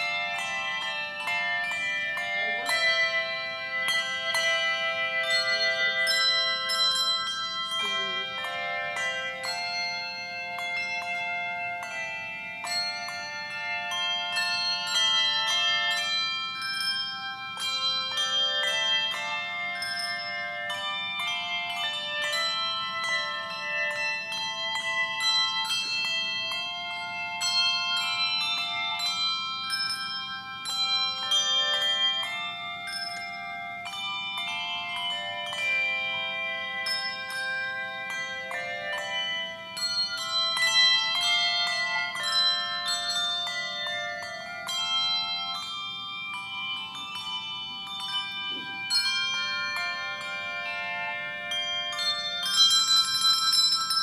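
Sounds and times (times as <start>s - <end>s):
handbell choir playing: 0.0s - 54.0s.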